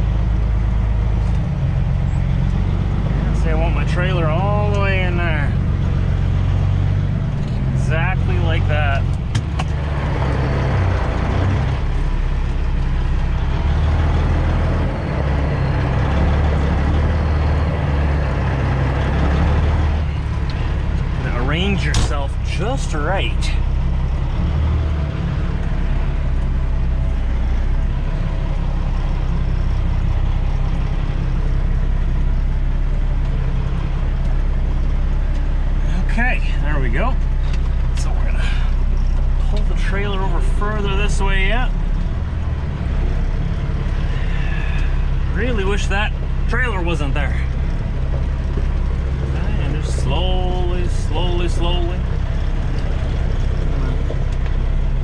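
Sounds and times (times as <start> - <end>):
truck diesel engine running: 0.0 - 55.0.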